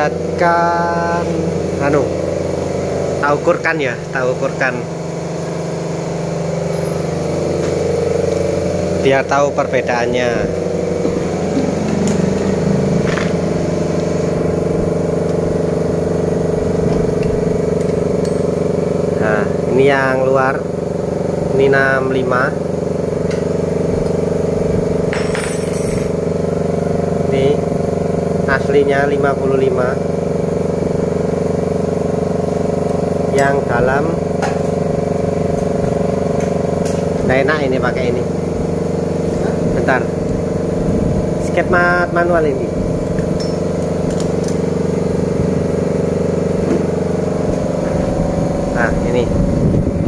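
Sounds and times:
machine hum: 0.0 - 29.0, 29.6 - 50.0
engine running with fast pulse: 0.0 - 50.0.

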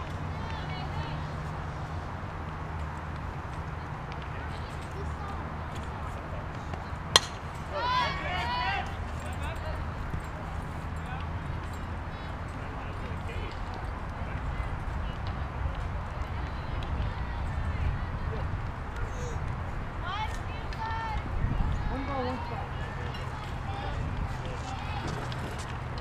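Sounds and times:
bat cracking against ball: 7.1 - 7.6
players yelling: 7.1 - 9.0.

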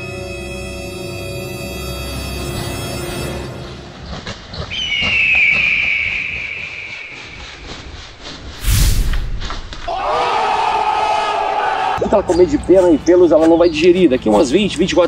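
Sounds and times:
crowd cheering and shouting: 9.8 - 12.4.

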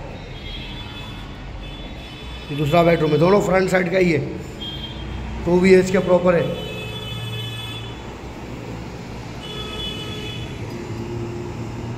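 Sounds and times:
road traffic: 0.0 - 11.9.

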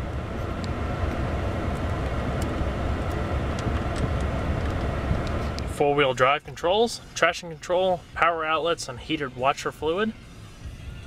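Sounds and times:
engine idling rumble: 0.0 - 11.0.

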